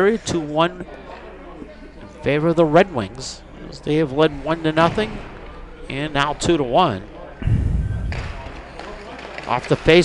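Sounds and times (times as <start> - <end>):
loud dull thud: 7.4 - 8.6.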